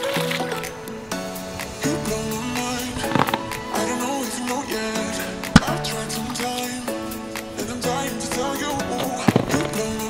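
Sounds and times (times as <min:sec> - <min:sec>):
upbeat background music: 0:00.0 - 0:10.0
water balloon bursting: 0:01.6 - 0:10.0.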